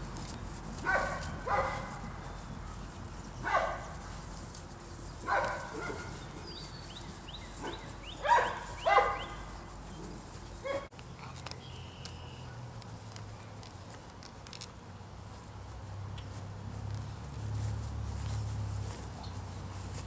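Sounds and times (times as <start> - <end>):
puppies barking: 0.8 - 4.4, 5.0 - 11.6.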